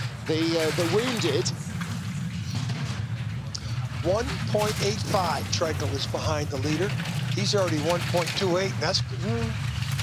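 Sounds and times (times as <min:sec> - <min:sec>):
bobsleigh runners rumbling on ice: 0:00.0 - 0:10.0.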